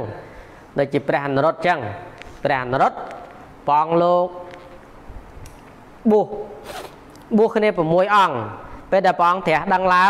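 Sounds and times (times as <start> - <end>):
man speaking: 0.0 - 4.4, 7.3 - 10.0.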